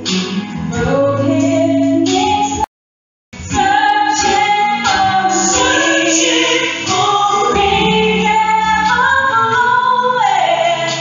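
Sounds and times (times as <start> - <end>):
worship band over loudspeakers: 3.4 - 11.0
woman singing long notes: 3.6 - 10.1.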